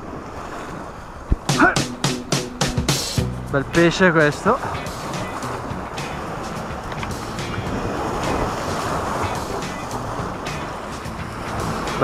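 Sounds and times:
surf breaking over rocks: 0:00.0 - 0:12.0
wind on microphone: 0:00.0 - 0:12.0.

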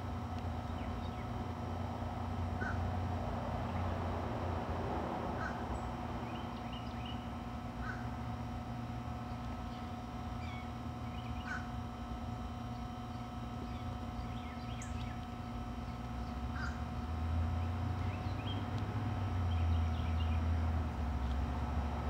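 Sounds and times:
steady low hum: 0:00.0 - 0:22.0
crow cawing: 0:02.6 - 0:02.9, 0:05.4 - 0:05.6, 0:07.8 - 0:08.2, 0:11.4 - 0:11.7, 0:16.5 - 0:16.8
small birds chirping: 0:05.4 - 0:08.1, 0:09.2 - 0:11.7, 0:12.6 - 0:18.8, 0:19.4 - 0:20.6.

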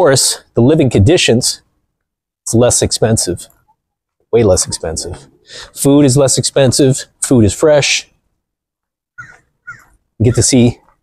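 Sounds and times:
short animal calls: 0:09.2 - 0:10.9.

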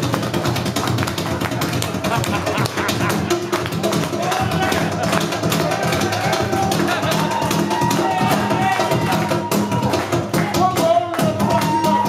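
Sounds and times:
rhythmic tapping on floor: 0:00.0 - 0:12.0.

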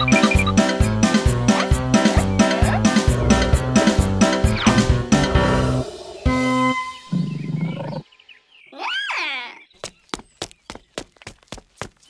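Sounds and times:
lion roaring: 0:02.4 - 0:06.6.

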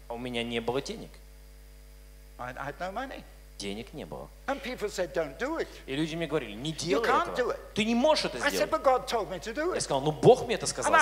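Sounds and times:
electrical mains hum: 0:00.0 - 0:11.0
man speaking over microphone: 0:02.4 - 0:11.0.

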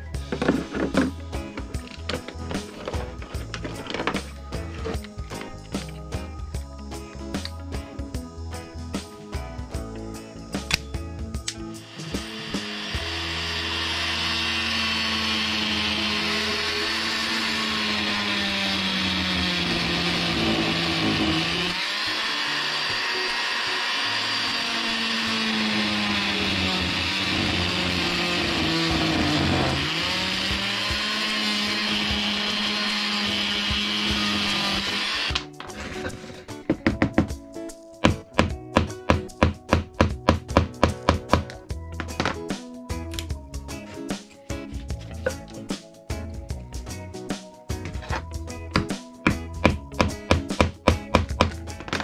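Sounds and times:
multi-tool cutting wood: 0:10.6 - 0:36.1, 0:47.9 - 0:52.0.

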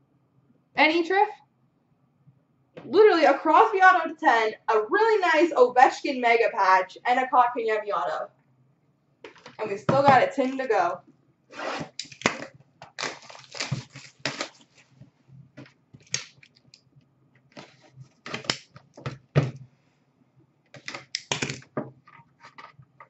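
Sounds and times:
cardboard packaging rustling and tearing: 0:11.6 - 0:15.0.

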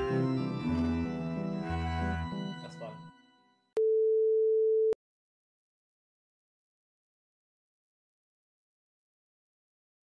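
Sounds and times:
organ music: 0:00.0 - 0:03.2.

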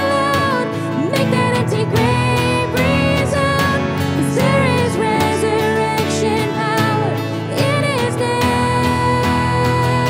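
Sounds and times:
keyboard: 0:00.0 - 0:10.0
woman singing: 0:00.0 - 0:10.0.

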